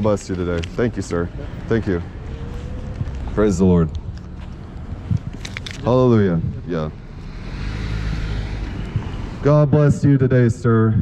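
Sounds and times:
car driving past: 1.3s - 5.1s, 6.4s - 9.7s.

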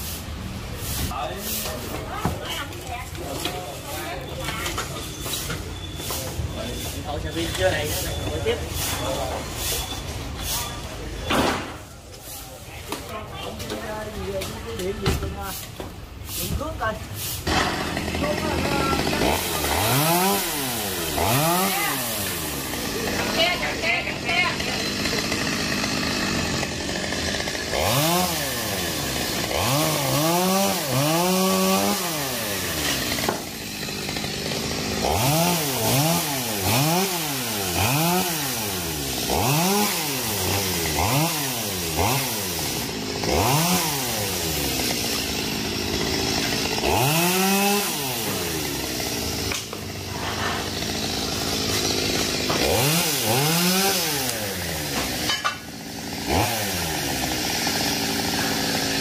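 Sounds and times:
chainsaw revving: 17.4s - 59.0s.

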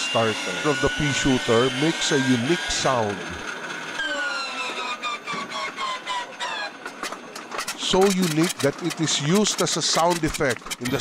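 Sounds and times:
inertia starter whining: 0.0s - 11.0s.

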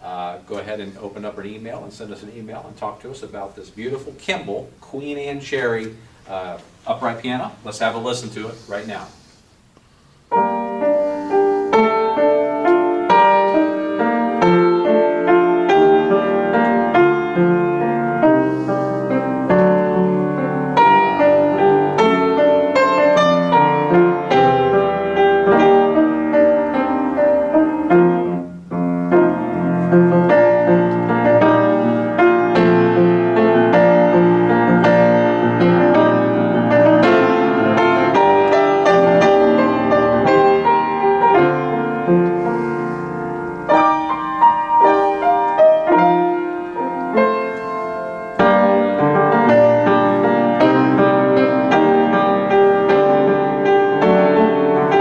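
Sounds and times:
upright piano playing: 10.2s - 55.0s.

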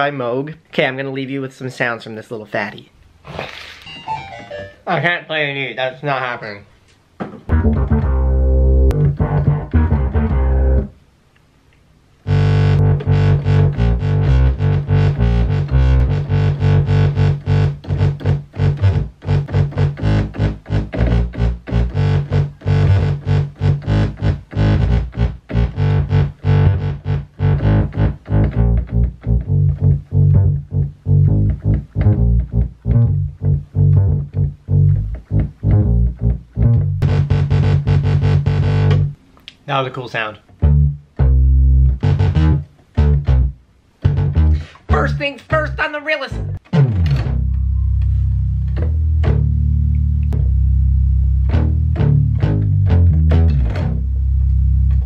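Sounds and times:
synthesizer bass line: 7.5s - 10.9s, 12.2s - 39.2s, 40.6s - 45.8s, 46.4s - 55.0s.

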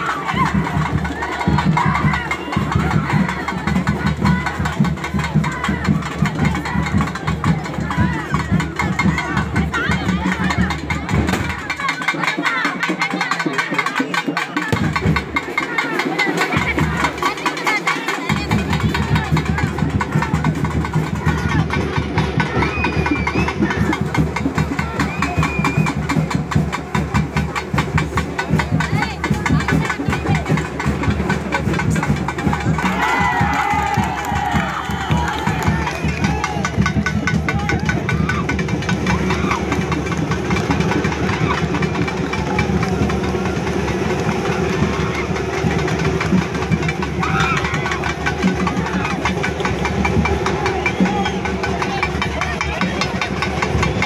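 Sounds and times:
crowd voices: 0.0s - 54.0s
fast drumming: 0.0s - 54.0s.

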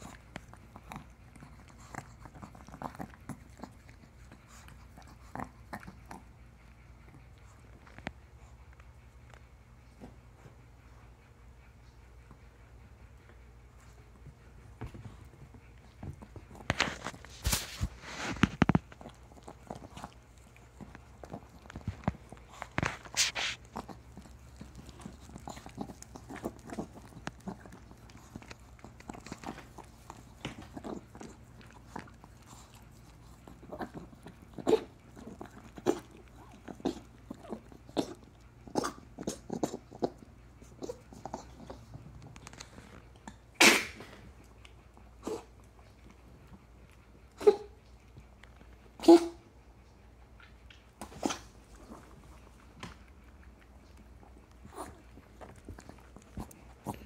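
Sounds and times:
dog licking: 13.3s - 49.0s, 50.0s - 57.0s.

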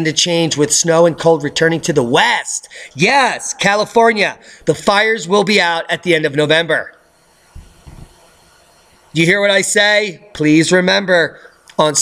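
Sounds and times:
faint steady hiss: 0.0s - 12.0s
soft low thumps: 7.6s - 8.2s.

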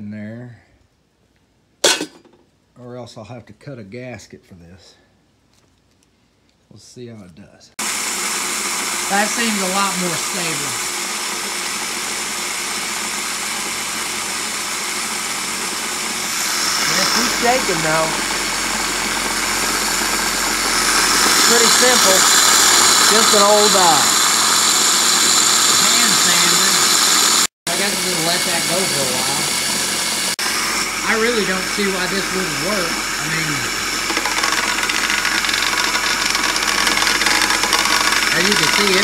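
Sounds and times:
metal pan and lid rattling: 1.8s - 2.4s
electric hand sander running: 7.8s - 39.0s
steel pan rattling on sander: 33.5s - 39.0s.

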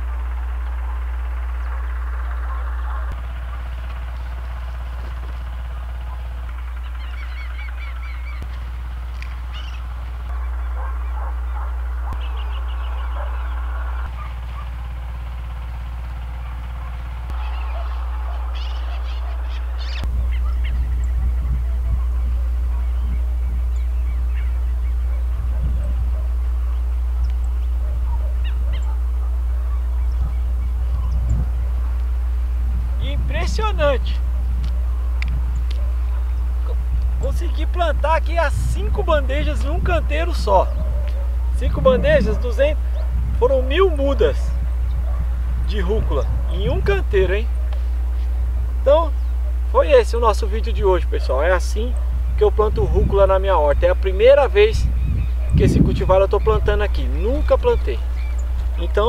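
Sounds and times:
bird calls: 0.0s - 59.0s
steady low rumble: 0.0s - 59.0s.

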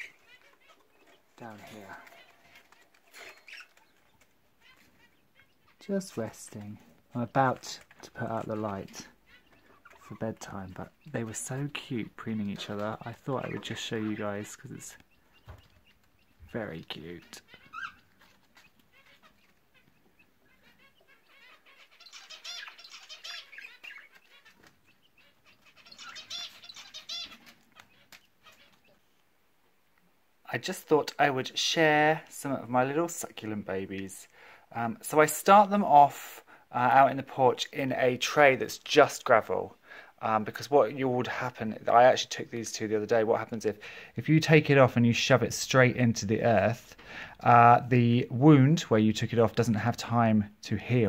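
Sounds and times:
budgerigars chirping: 0.0s - 29.2s.

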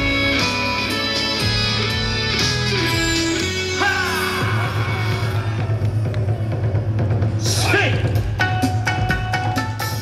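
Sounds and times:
dance music over loudspeakers: 0.0s - 10.0s.

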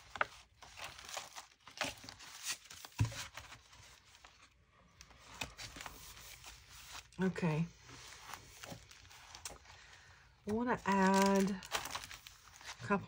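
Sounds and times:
paper rustling and crinkling: 0.0s - 13.0s.

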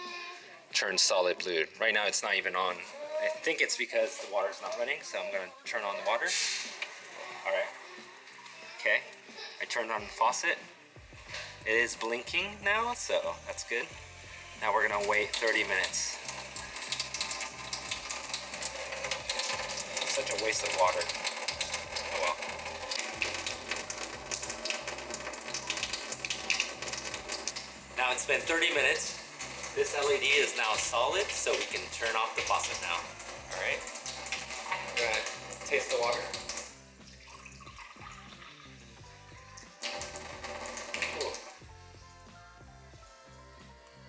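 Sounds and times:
background music: 0.0s - 44.0s
water running with crackly hiss: 12.7s - 41.6s.

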